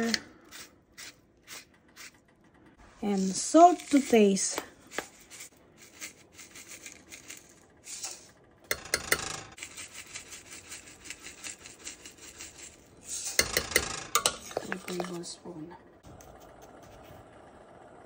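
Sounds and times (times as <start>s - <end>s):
metal spoon scraping pot: 3.1s - 15.3s
granules pouring rasping: 3.2s - 8.3s.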